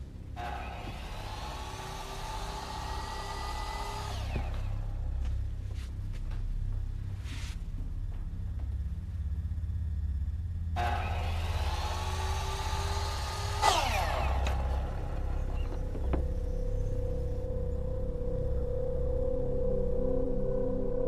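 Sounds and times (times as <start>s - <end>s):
swelling riser: 0.0s - 5.8s, 10.7s - 18.5s
low rumble: 0.0s - 21.0s
steep falling sweeps: 10.8s - 16.5s.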